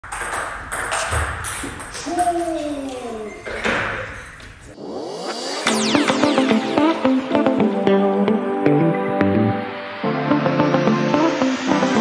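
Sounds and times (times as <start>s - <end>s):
table tennis ball hits: 0.0s - 2.4s.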